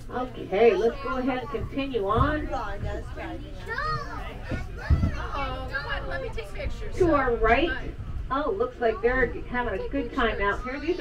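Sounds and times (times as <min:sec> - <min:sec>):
passengers chattering: 0:00.0 - 0:11.0
tram rumbling: 0:00.0 - 0:11.0
child's voice: 0:00.7 - 0:01.7, 0:02.7 - 0:06.6, 0:09.8 - 0:11.0.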